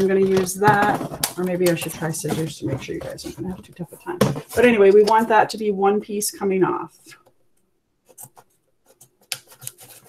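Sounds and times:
scissors cutting plastic: 0:09.0 - 0:10.0.

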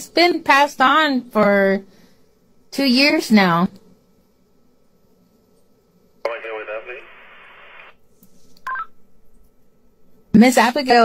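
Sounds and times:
tinny radio voice: 0:06.3 - 0:07.9
radio static hiss: 0:06.3 - 0:08.0.

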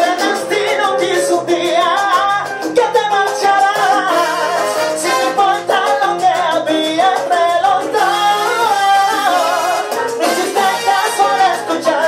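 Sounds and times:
person singing: 0:00.0 - 0:12.0
salsa band playing: 0:00.0 - 0:12.0.

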